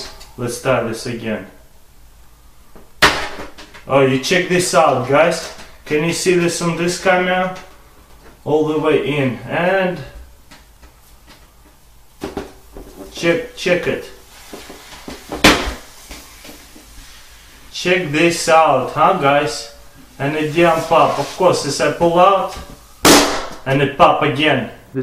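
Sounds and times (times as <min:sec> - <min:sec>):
sharp knock: 0:23.0 - 0:23.6.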